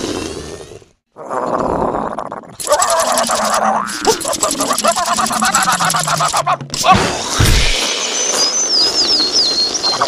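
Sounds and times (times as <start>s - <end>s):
cartoon tweeting birds chirps: 1.9s - 10.0s.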